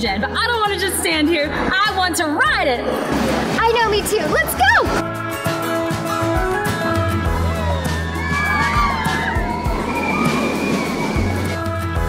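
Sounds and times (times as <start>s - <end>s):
background music: 0.0s - 12.0s
riders screaming: 7.5s - 11.6s
roller coaster train rushing on track: 7.6s - 11.9s.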